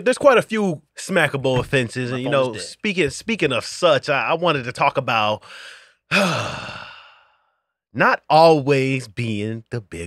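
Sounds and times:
man sighing: 5.4 - 7.3.

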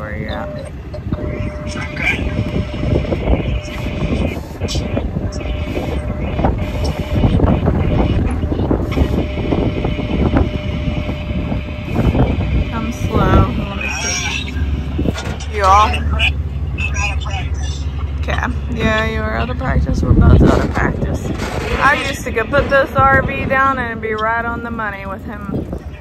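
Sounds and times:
truck engine running: 0.0 - 26.0
wind buffeting microphone: 0.0 - 26.0.

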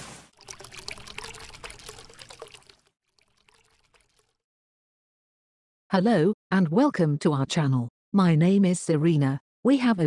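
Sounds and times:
water pouring and splashing: 0.0 - 4.4
bubbly pops: 0.3 - 4.4.

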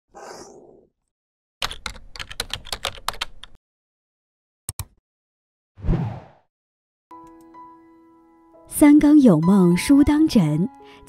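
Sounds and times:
keyboard typing: 1.6 - 3.6.

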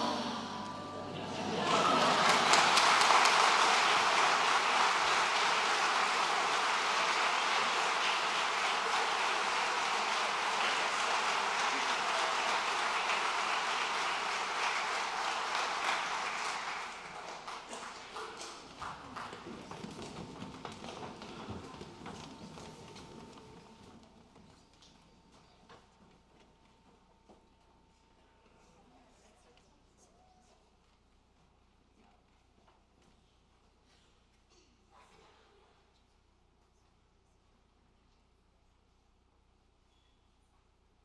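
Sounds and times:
choir chord: 0.0 - 2.5
audience applauding: 1.1 - 23.6.

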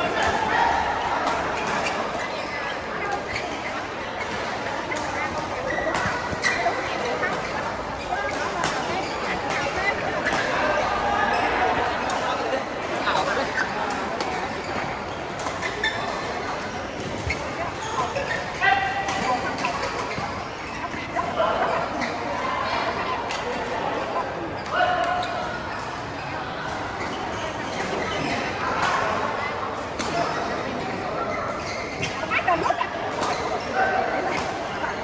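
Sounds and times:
chatter in a busy hall: 0.0 - 35.0
players' voices echoing: 0.0 - 35.0.

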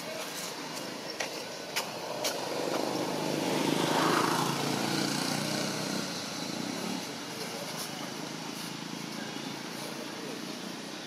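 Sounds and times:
motor vehicle passing by: 1.8 - 9.3.

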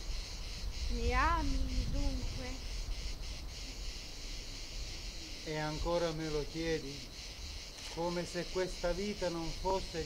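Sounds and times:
high hiss: 0.0 - 10.0
woman asking a question: 0.9 - 2.6.

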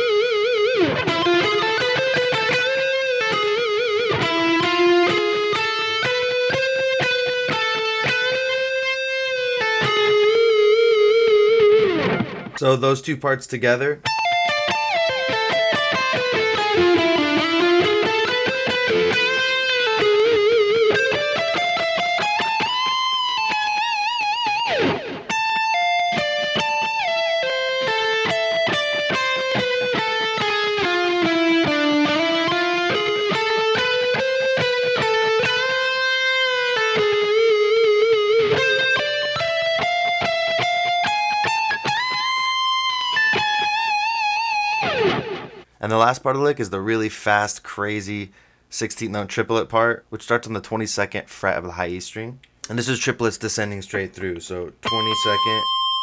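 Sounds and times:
electric guitar lead: 0.0 - 12.6, 14.0 - 45.7, 54.8 - 56.0.

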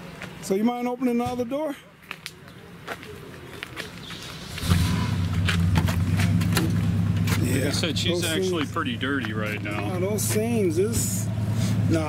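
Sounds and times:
vehicle engine idling: 3.9 - 12.0.

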